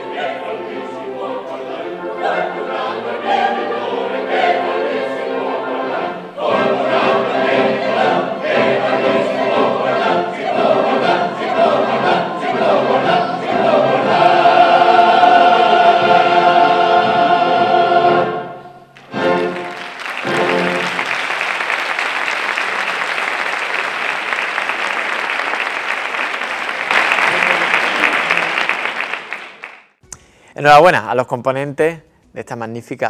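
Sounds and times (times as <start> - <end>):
mixed choir singing: 0.0 - 21.1
instrumental accompaniment: 0.0 - 21.6.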